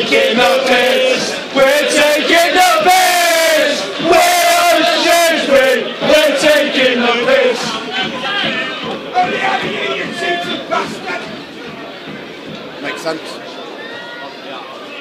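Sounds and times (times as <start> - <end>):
crowd chanting: 0.0 - 15.0
crowd noise: 0.0 - 15.0.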